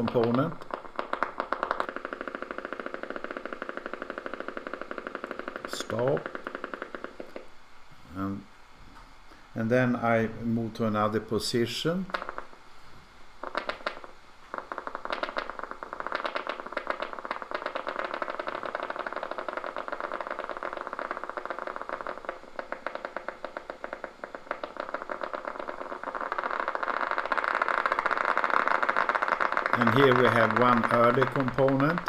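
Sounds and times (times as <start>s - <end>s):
emg loudspeaker clicks and crackle: 0.0s - 7.5s, 10.8s - 12.6s, 13.4s - 32.0s.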